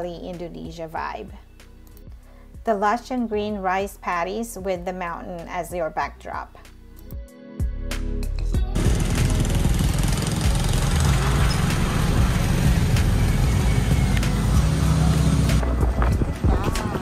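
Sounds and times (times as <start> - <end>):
background music: 0.0 - 17.0
wind and road noise from vehicle: 10.3 - 17.0.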